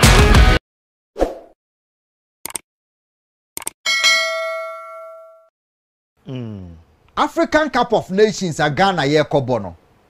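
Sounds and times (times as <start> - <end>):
notification bell chime: 3.9 - 5.5.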